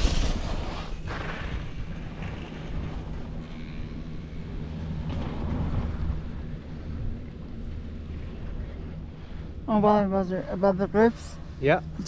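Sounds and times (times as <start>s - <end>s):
skis sliding over packed snow: 0.0s - 3.0s
steady low rumble: 0.0s - 12.0s.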